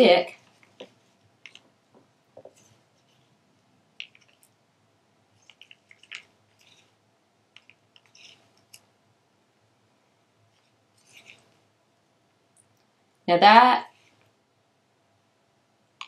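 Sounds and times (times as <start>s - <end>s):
stir stick scraping plastic cup: 5.4s - 8.9s, 10.5s - 11.6s.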